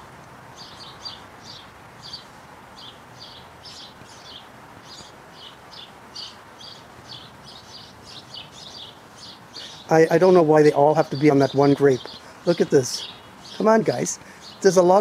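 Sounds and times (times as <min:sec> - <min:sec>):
bird chirping: 0:00.0 - 0:15.0
faint outdoor background noise: 0:00.0 - 0:15.0.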